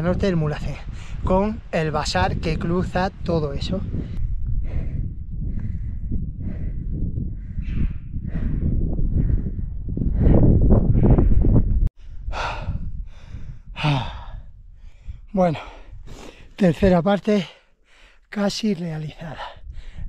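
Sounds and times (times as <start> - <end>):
wind rumbling on microphone: 0.0 - 17.0, 19.2 - 20.0
man panting heavily: 3.9 - 16.5, 19.4 - 20.0.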